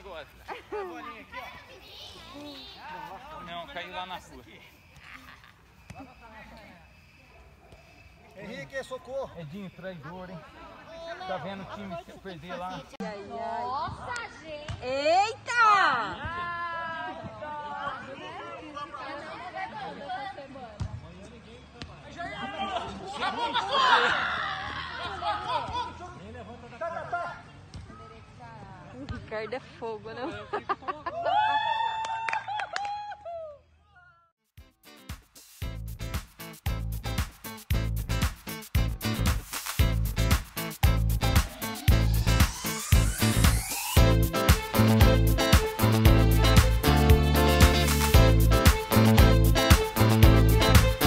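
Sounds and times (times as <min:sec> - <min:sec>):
people calling out and talking: 0:00.0 - 0:20.8, 0:36.8 - 0:51.0.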